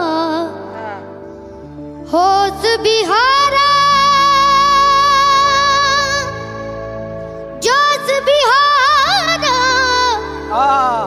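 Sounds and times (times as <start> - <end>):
backing music: 0.0 - 11.0
boy singing: 2.1 - 6.5, 7.6 - 11.0.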